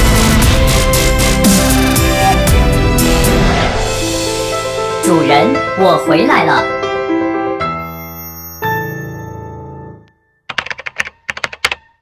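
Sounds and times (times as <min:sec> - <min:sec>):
computer keyboard typing: 0:10.5 - 0:12.0.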